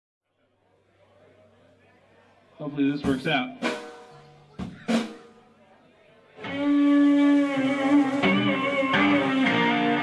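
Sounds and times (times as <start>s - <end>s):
drum kit strikes: 3.0s - 5.5s.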